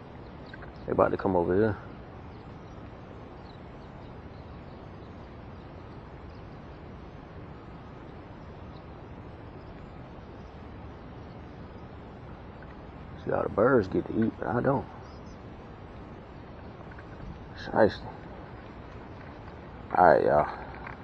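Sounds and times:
distant bird calls: 0:00.0 - 0:21.0
outdoor background hiss: 0:00.0 - 0:21.0.

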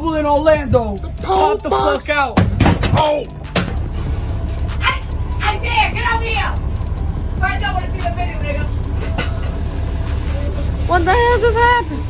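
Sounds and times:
bus engine and road noise: 0:00.0 - 0:12.0
voices: 0:00.0 - 0:12.0.

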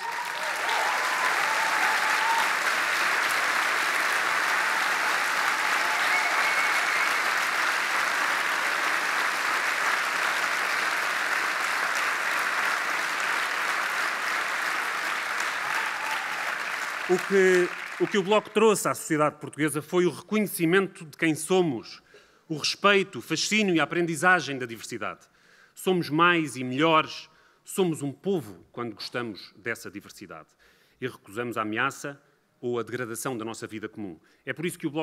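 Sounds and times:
large audience applauding: 0:00.0 - 0:18.6.

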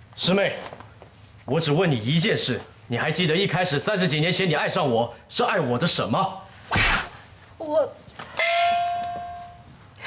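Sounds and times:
short swish: 0:06.6 - 0:07.2
bell ringing: 0:08.4 - 0:09.8.

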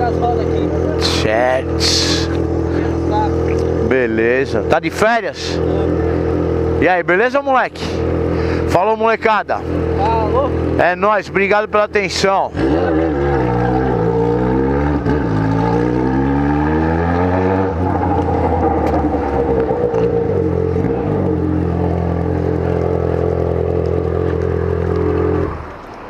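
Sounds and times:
motorcycle engine revving: 0:00.0 - 0:25.8.

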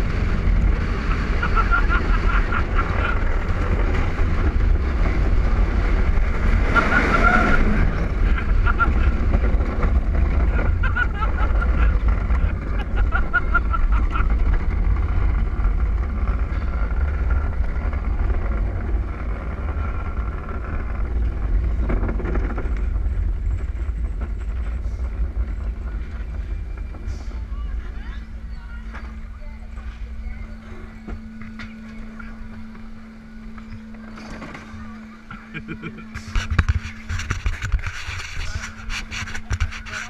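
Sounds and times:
wheels rumbling on concrete: 0:00.0 - 0:40.0
wind buffeting microphone: 0:00.0 - 0:40.0.

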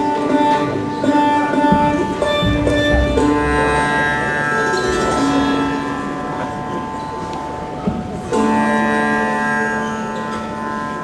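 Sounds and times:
sitar plucked note: 0:00.0 - 0:11.0.

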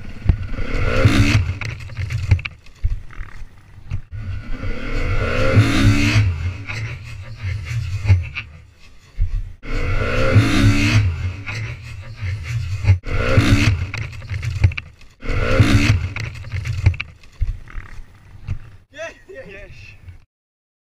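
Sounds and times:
motorbike engine revving: 0:00.0 - 0:08.6, 0:09.6 - 0:18.6.

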